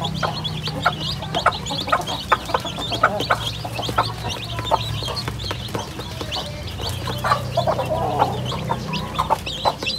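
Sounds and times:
chicks peeping: 0.0 - 9.9
hen clucking: 0.0 - 9.9
beaks tapping on plastic tray: 0.6 - 7.8.

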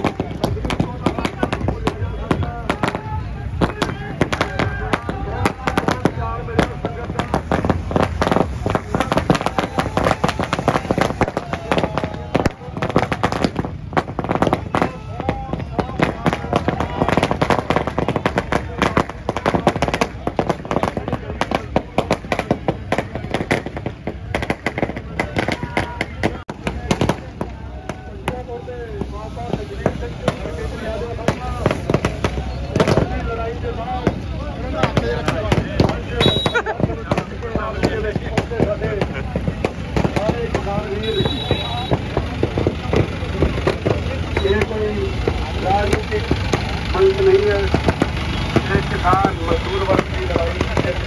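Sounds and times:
crowd voices: 0.0 - 51.0
firecrackers popping: 0.0 - 51.0.

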